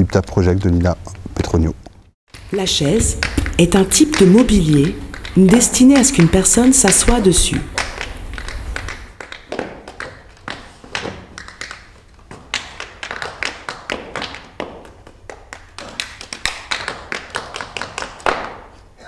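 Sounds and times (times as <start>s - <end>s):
tap shoes striking floor: 2.3s - 18.8s.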